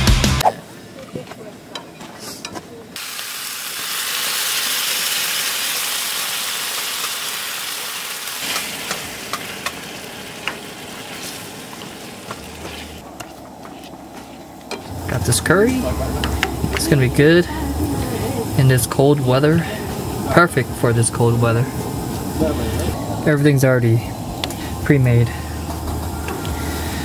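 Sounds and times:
curry sizzling in a skillet: 3.0s - 13.0s.

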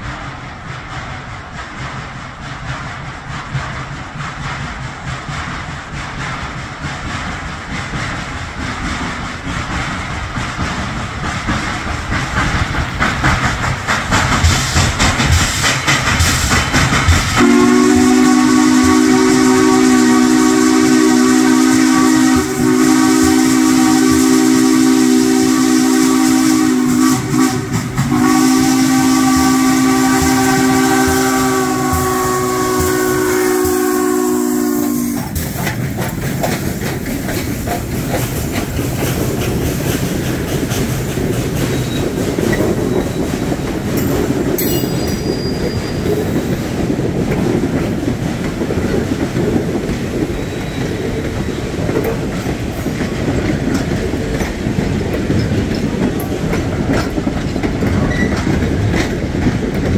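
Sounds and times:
steam hissing: 0.0s - 59.8s
steam locomotive chuffing: 0.0s - 59.9s
train wheels clickety-clack: 0.0s - 59.9s
train chime whistle: 44.0s - 46.4s.

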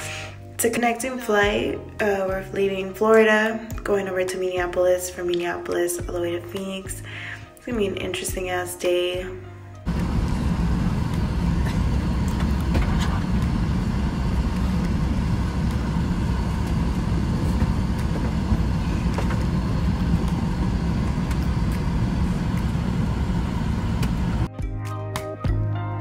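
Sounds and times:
music: 0.0s - 26.0s
jet airliner cabin drone: 9.9s - 24.5s.

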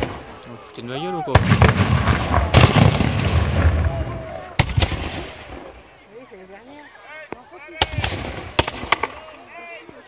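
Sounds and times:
crowd chatter: 0.0s - 10.0s
musket shots: 1.4s - 3.8s, 7.8s - 9.2s.

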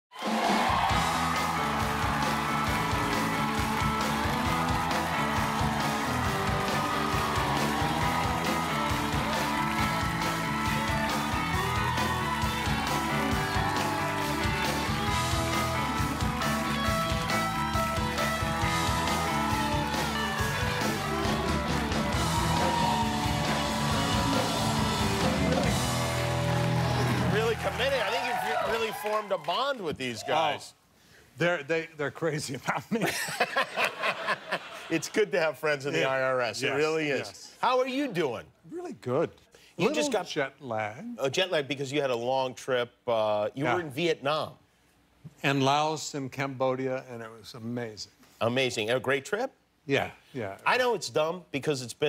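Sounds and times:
band playing walk-on music: 0.2s - 28.6s.

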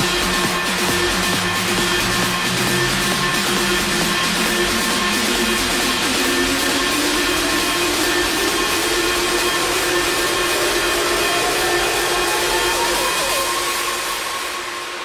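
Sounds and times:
synth tone gliding upward: 0.0s - 15.0s.

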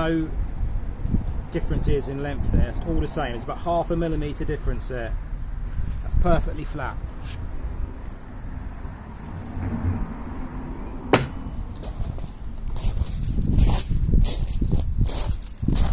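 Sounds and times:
steady low rumble: 0.0s - 15.9s
wood knocking: 11.1s - 11.5s
footsteps on gravel: 11.2s - 15.9s.

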